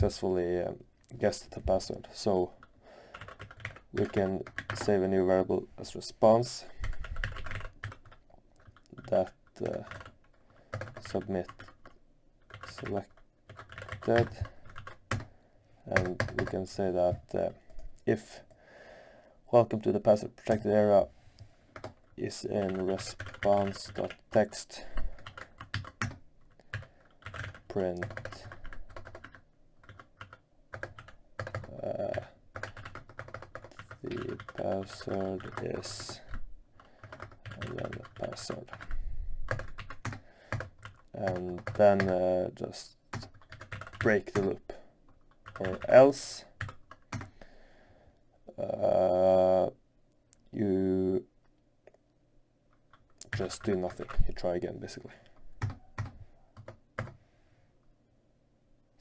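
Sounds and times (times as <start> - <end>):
typing on computer keyboard: 3.1 - 5.0, 6.9 - 15.3, 15.9 - 17.2, 21.8 - 24.4, 25.2 - 42.2, 43.1 - 47.3, 55.6 - 57.2.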